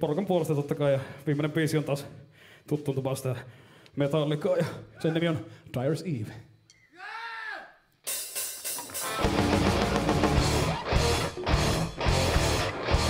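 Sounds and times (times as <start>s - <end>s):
electric guitar: 8.8s - 13.0s
heavy metal band playing live: 8.9s - 13.0s.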